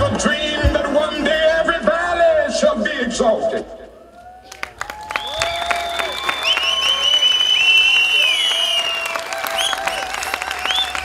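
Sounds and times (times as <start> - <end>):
audience applauding: 4.4 - 11.0
whistles: 5.0 - 11.0.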